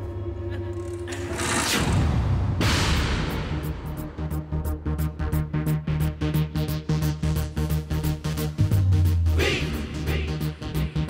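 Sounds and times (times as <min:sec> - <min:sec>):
film soundtrack music: 0:00.0 - 0:11.0
sudden loud noise burst: 0:01.1 - 0:04.4.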